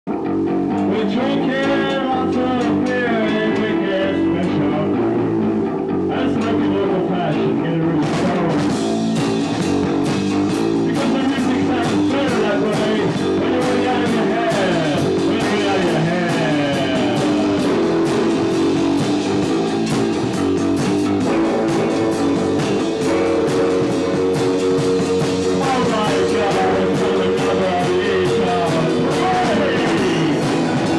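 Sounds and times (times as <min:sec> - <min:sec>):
electric guitar: 0:00.1 - 0:30.9
drums and cymbals: 0:00.4 - 0:30.9
person singing into microphone: 0:00.8 - 0:05.1, 0:25.5 - 0:30.9.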